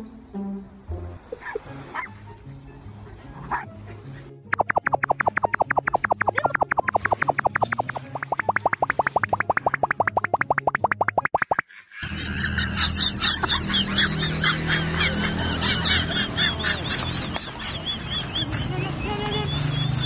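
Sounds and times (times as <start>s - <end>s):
low backing music: 0.0s - 11.2s
quick high chirps: 4.5s - 11.6s
cartoon boing sound effects: 4.6s - 11.6s.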